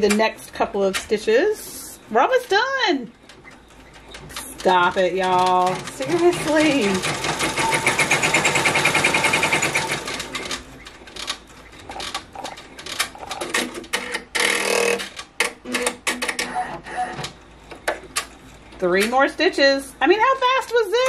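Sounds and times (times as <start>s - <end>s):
embroidery machine stitching: 3.3s - 17.4s.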